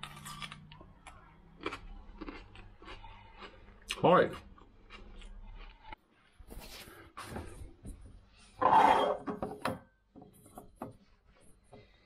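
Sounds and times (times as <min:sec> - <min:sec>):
loud scrape: 0:08.6 - 0:09.2.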